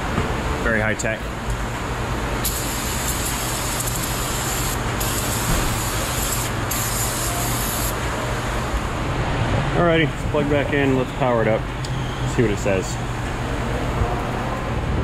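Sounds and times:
low shop hum: 0.0s - 15.0s.

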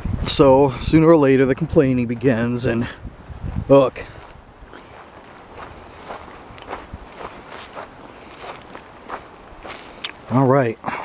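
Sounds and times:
footsteps on dirt trail: 2.8s - 11.0s.

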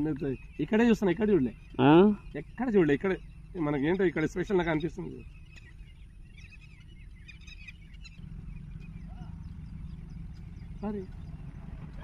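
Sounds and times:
high-pitched bird chirps: 0.0s - 12.0s
low steady background rumble: 0.0s - 12.0s.

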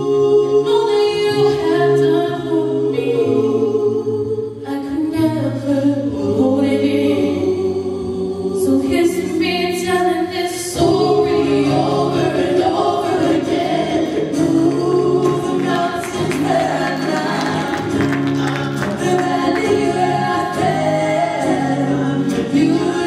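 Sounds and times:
men's vocal group singing gospel: 10.7s - 23.0s.

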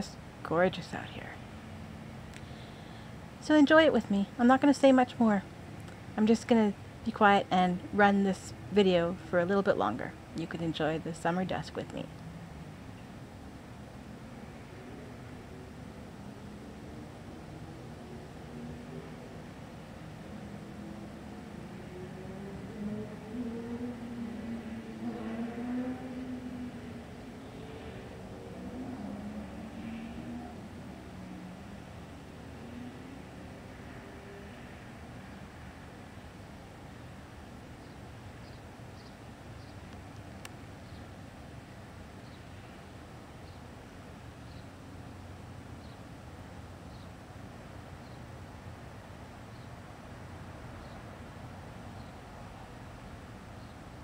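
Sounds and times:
vehicle engine passing: 10.9s - 13.0s, 13.7s - 36.1s.

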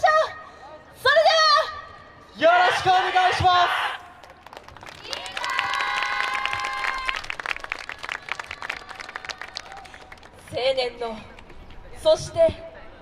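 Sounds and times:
audience applause: 4.3s - 10.4s.

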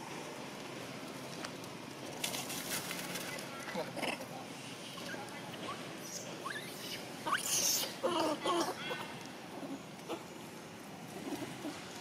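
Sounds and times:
monkey squeaks: 6.4s - 7.9s.

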